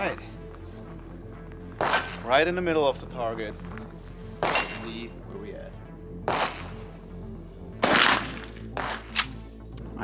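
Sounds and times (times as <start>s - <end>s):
background music: 0.0s - 10.0s
shotgun shot with echo: 1.8s - 2.2s, 4.4s - 4.9s, 6.2s - 6.8s, 7.8s - 9.4s.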